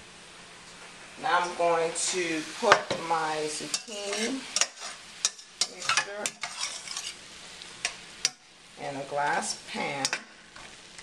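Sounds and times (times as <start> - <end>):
faint pan sizzle: 0.0 - 11.0
spoon stirring vegetables in pan: 2.6 - 11.0.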